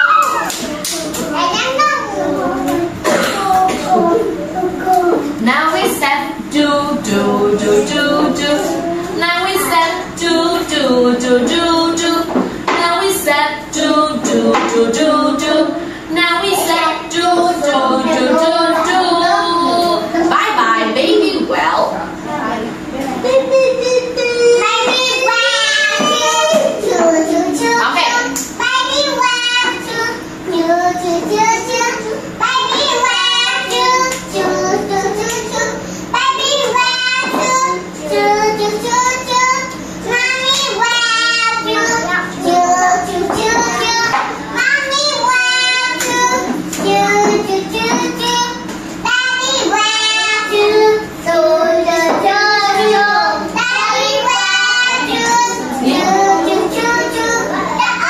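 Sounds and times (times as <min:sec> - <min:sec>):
children singing together: 0:00.0 - 0:20.4, 0:23.2 - 0:58.0.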